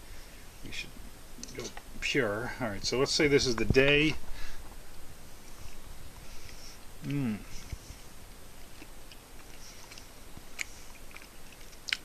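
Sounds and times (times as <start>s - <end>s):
quiet chewing: 5.4s - 12.0s
small mouth clicks: 7.0s - 7.3s, 8.8s - 12.0s.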